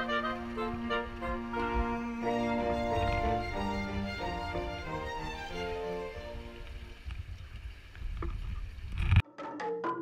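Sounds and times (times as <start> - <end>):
low uneven rumble: 0.0 - 9.2.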